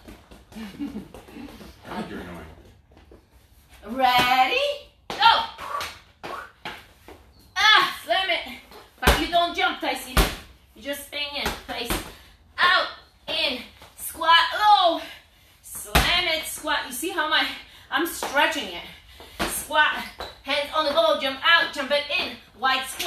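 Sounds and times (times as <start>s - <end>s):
medicine ball thudding on floor: 9.0s - 10.5s.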